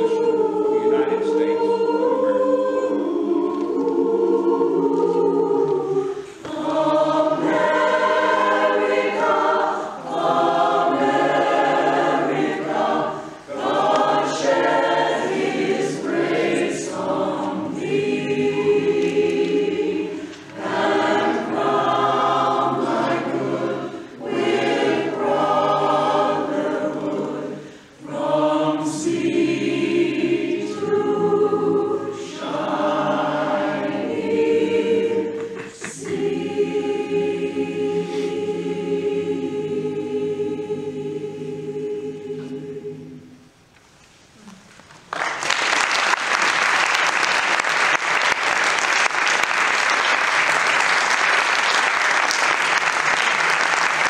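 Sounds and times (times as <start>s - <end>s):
chorus singing: 0.0s - 43.5s.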